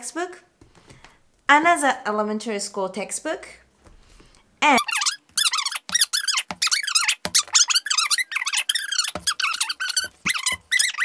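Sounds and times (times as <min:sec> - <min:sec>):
high-pitched wavering squeaks: 0:04.7 - 0:11.0.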